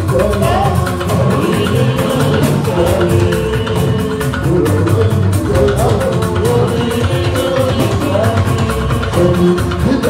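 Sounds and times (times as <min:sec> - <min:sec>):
drum kit and hand percussion: 0:00.0 - 0:10.0
live band playing: 0:00.0 - 0:10.0.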